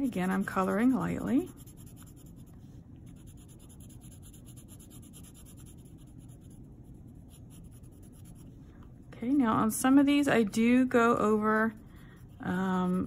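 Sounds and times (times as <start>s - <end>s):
pencil scratching on paper: 0.0s - 8.6s, 11.2s - 13.0s.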